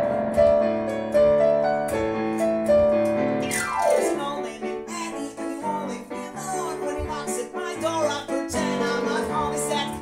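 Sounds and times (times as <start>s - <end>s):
piano chords: 0.0s - 10.0s
man singing: 4.0s - 10.0s.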